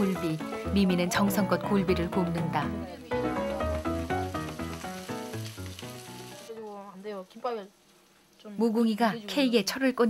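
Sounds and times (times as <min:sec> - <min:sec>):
background music: 0:00.0 - 0:06.9
fish sizzling as it fries: 0:00.0 - 0:09.0.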